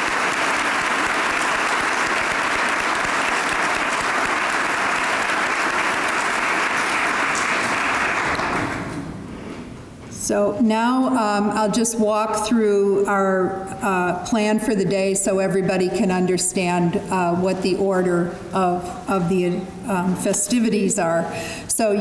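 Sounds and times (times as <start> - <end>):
audience applauding: 0.0 - 9.0.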